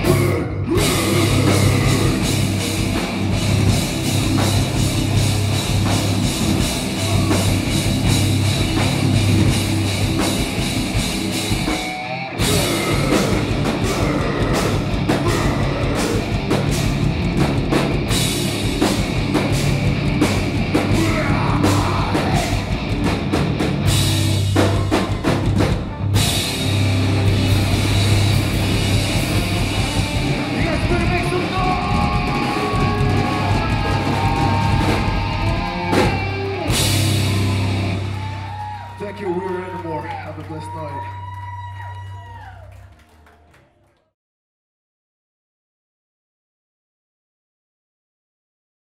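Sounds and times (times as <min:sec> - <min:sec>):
heavy rock band playing: 0:00.0 - 0:39.9.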